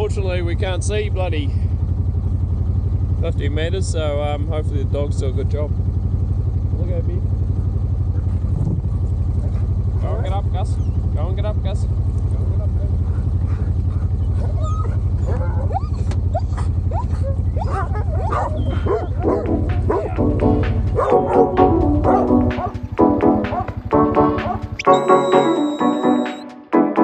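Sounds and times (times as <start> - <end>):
motorbike engine idling: 0.0 - 26.4
dogs barking and yipping: 9.4 - 9.8, 13.0 - 26.4
background music: 19.2 - 27.0.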